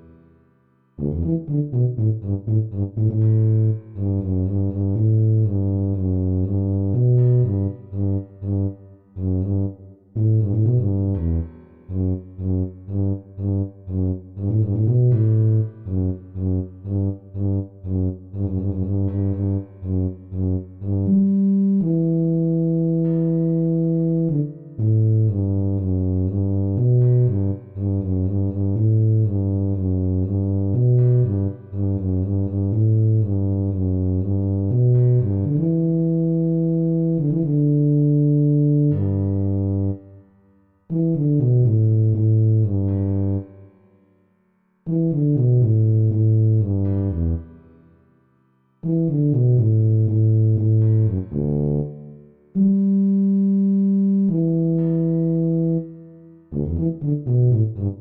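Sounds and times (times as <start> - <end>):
tuba playing bass line: 1.0 - 40.2, 40.9 - 43.7, 44.9 - 47.7, 48.8 - 58.0.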